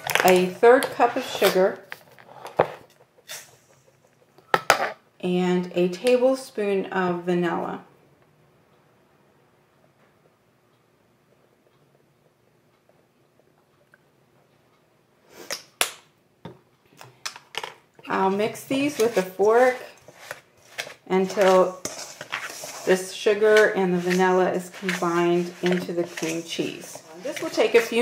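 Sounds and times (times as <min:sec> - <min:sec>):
measuring spoons scraping: 0:18.1 - 0:28.0
sugar pouring into metal bowl: 0:21.7 - 0:27.8.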